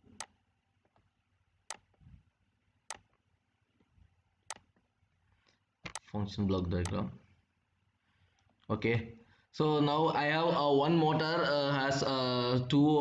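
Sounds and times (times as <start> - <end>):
computer mouse clicking: 0.0 - 1.1, 1.7 - 2.1, 2.9 - 3.2, 4.5 - 4.9, 5.8 - 6.1.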